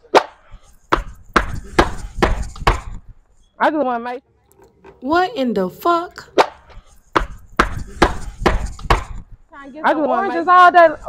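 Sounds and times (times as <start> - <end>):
dull thumps: 0.0 - 3.2, 6.2 - 9.5.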